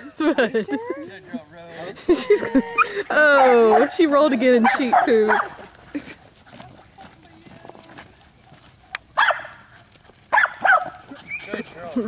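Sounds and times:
dog barking: 0:03.3 - 0:04.0, 0:04.6 - 0:05.6, 0:09.2 - 0:09.6, 0:10.3 - 0:11.0.

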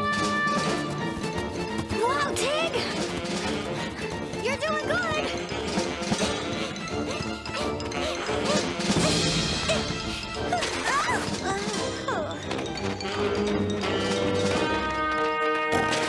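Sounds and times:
cartoon background music: 0:00.0 - 0:16.0.

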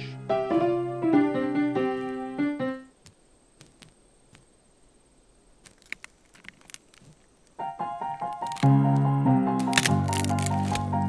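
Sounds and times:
solo piano piece: 0:00.0 - 0:02.9, 0:07.6 - 0:11.0.

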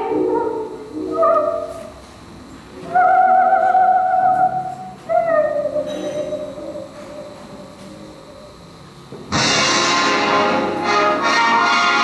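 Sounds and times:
woman singing with vibrato: 0:00.0 - 0:01.9, 0:02.8 - 0:07.4.

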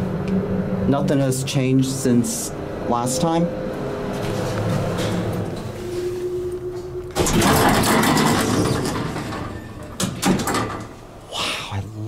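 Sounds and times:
elevator doors sliding open: 0:00.0 - 0:11.2.

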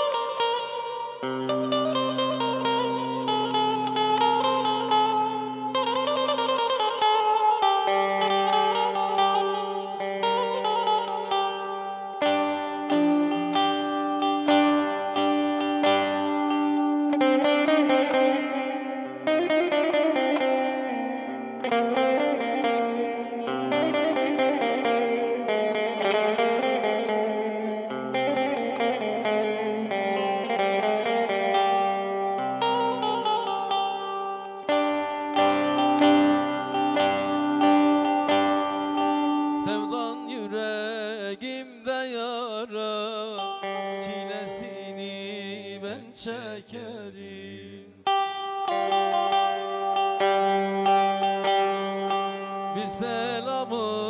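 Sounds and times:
plucked string melody: 0:00.0 - 0:54.0.

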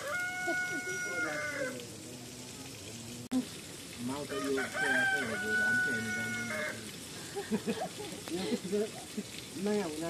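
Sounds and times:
rooster crowing: 0:00.0 - 0:01.8, 0:04.2 - 0:06.9.

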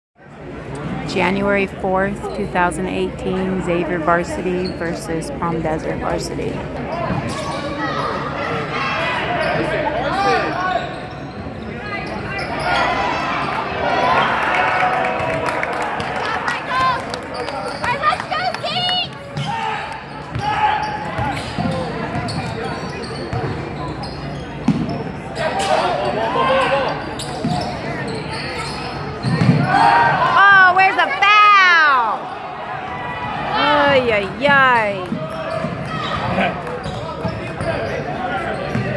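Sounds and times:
sneakers squeaking: 0:02.3 - 0:13.6, 0:19.2 - 0:29.9, 0:33.3 - 0:38.9.

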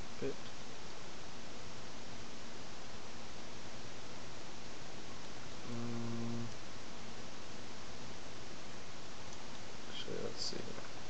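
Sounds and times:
microphone hiss: 0:00.0 - 0:11.0
person humming: 0:05.6 - 0:06.6.

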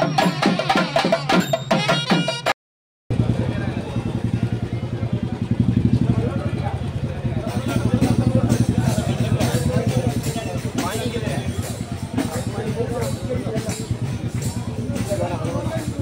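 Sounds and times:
crowd chatter: 0:03.1 - 0:16.0.

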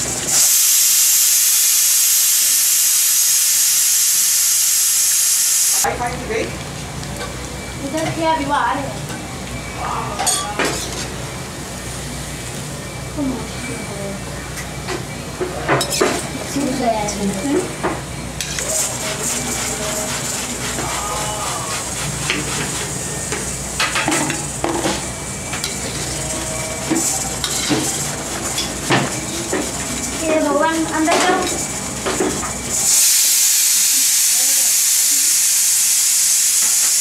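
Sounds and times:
food deep-frying in hot oil: 0:00.0 - 0:07.5, 0:18.4 - 0:37.0
food deep-frying in oil: 0:00.0 - 0:07.6.

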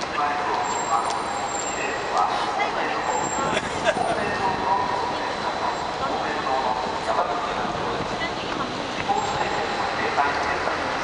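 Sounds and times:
chatter of people: 0:00.0 - 0:11.0
steady traffic noise: 0:00.0 - 0:11.0.

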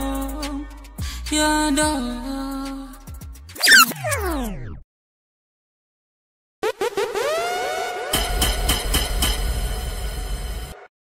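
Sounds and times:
held electronic tone: 0:03.6 - 0:04.3
electronic hits: 0:03.6 - 0:04.5.

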